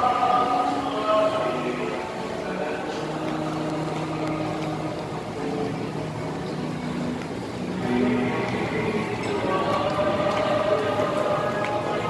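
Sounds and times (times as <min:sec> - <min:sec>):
faint background music: 0:00.0 - 0:12.0
murmur of shoppers: 0:00.0 - 0:12.0.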